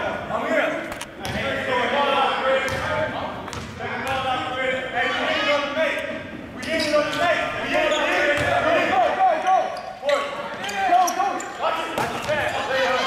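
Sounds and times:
basketball bouncing on court: 2.7 - 4.2.

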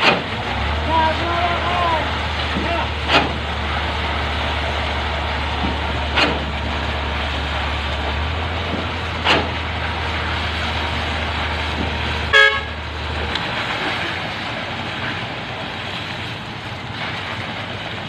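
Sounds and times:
truck engine droning: 0.0 - 18.0.

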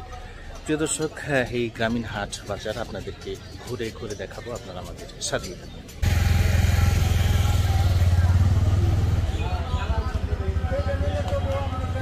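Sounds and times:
vehicle engine running: 6.0 - 9.4.

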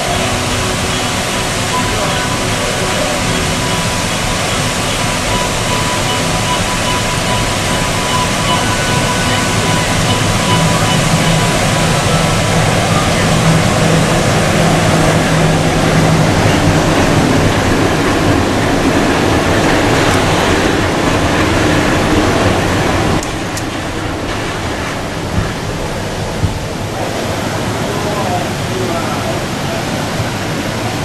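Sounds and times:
fountain water: 0.0 - 31.0
monorail train passing: 0.0 - 31.0.

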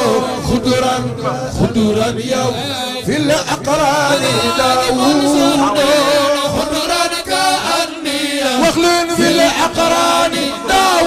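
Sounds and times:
men chanting unaccompanied: 0.0 - 11.0.

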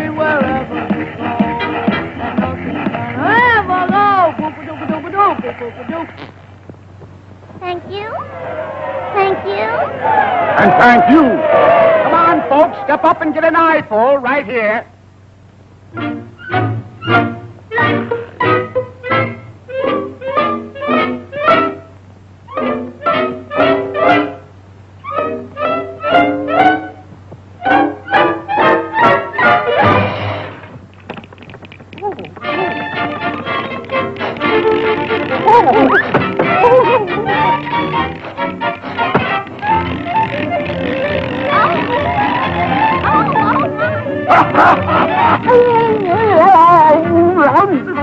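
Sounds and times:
cartoon music with bowed strings: 0.0 - 5.5, 15.9 - 21.9, 22.5 - 30.7, 32.0 - 48.0
steady low hum: 0.0 - 48.0
noisy clatter: 29.8 - 47.7.

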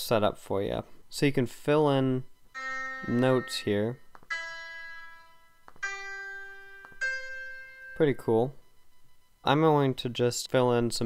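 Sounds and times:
sampled piano notes: 2.6 - 8.5.

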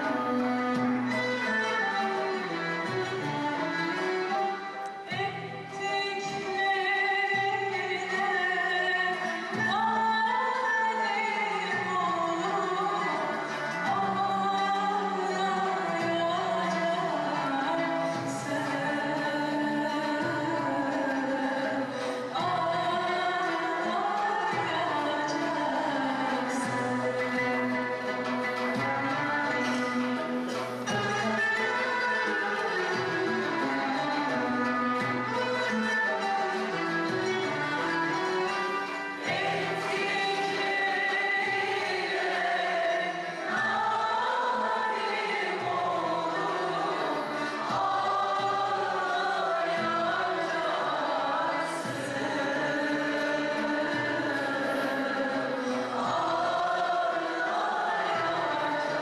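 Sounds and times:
violins holding long notes: 0.0 - 6.4, 12.0 - 59.0
choir singing: 39.2 - 59.0.

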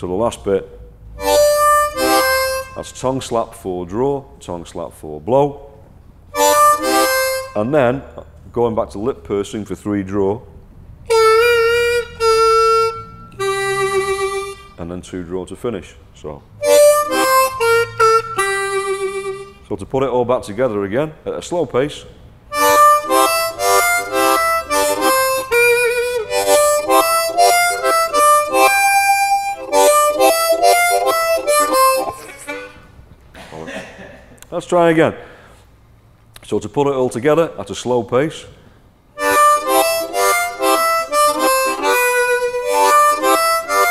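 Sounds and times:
harmonica held notes: 1.1 - 3.0, 6.3 - 7.8, 11.1 - 14.8, 16.6 - 19.7, 22.5 - 33.0, 39.2 - 43.9.

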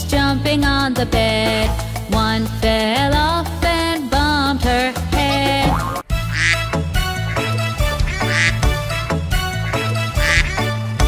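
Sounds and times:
upbeat children's song music: 0.0 - 11.0
cartoon duck quacking: 5.2 - 8.8, 9.7 - 10.8.

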